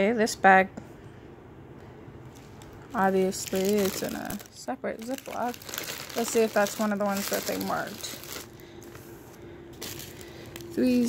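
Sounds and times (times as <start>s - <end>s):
faint steady hum: 0.0s - 11.0s
plastic bag crinkling: 2.3s - 9.2s, 9.8s - 11.0s.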